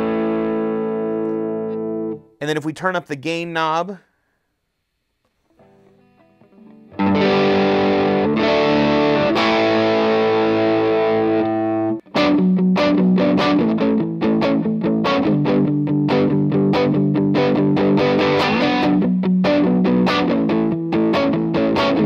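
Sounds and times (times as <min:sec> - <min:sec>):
overdriven electric guitar chords: 0:00.0 - 0:02.4, 0:05.5 - 0:22.0.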